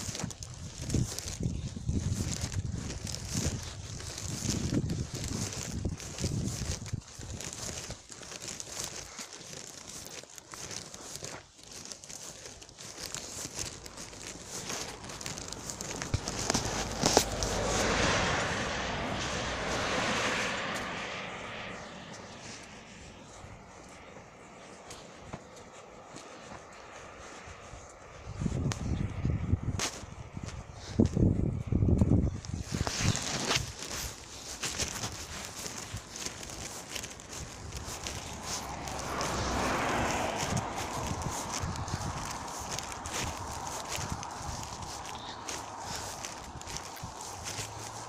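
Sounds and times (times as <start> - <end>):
low rumble on microphone: 0.0 - 8.9, 27.2 - 48.0
footsteps on concrete: 0.0 - 31.3, 32.4 - 48.0
broad rushing noise: 13.4 - 24.6, 32.7 - 48.0.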